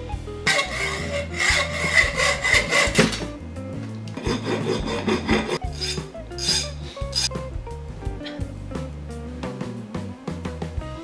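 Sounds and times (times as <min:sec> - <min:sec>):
background music: 0:00.0 - 0:11.0
filing metal: 0:00.5 - 0:03.3, 0:04.2 - 0:07.3
hand saw cutting metal: 0:00.5 - 0:03.3, 0:04.2 - 0:07.3.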